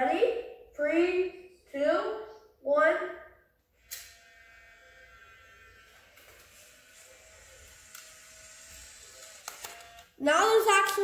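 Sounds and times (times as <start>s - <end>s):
camera motor whirring: 3.8s - 10.2s
camera shutter click: 9.2s - 10.1s.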